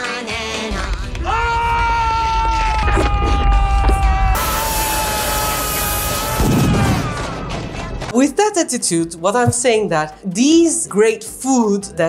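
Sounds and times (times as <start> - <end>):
long held high note: 4.4 - 7.0.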